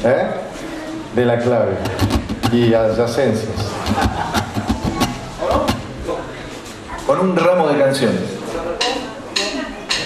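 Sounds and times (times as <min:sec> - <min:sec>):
man laughing into microphone: 0:03.6 - 0:05.0.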